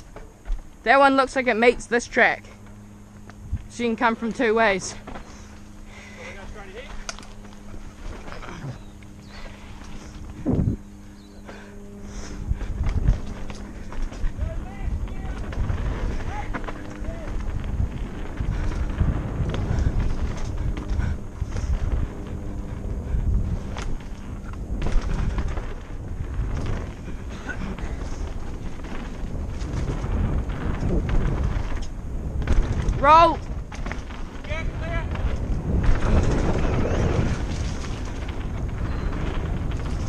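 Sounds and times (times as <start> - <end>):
bike tyres rumbling over rough ground: 0.0 - 40.0
bike knocking on bumps: 4.3 - 40.0.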